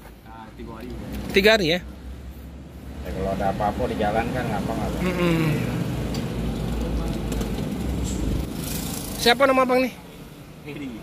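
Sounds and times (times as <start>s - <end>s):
vehicle low rumble: 0.0s - 9.3s.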